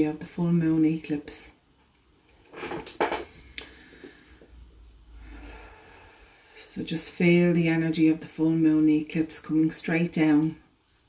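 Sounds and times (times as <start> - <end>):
woman breathing: 3.2 - 6.7.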